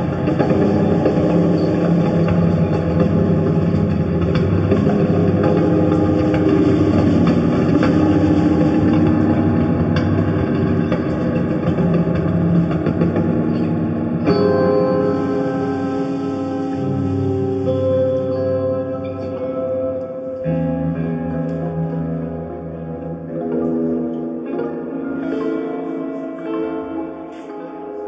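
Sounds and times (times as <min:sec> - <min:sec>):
droning electric guitar music: 0:00.0 - 0:28.0.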